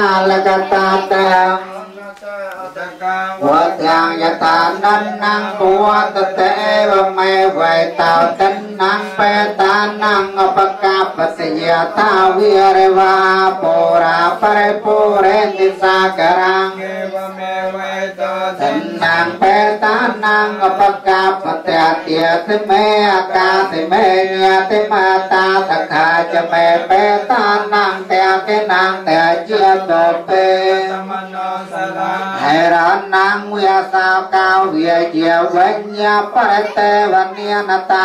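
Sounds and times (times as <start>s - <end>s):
voices chanting in unison: 0.0s - 38.0s.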